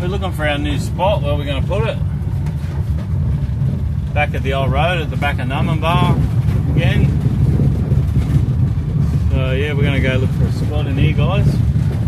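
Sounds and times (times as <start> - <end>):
car driving on gravel: 0.0 - 12.0.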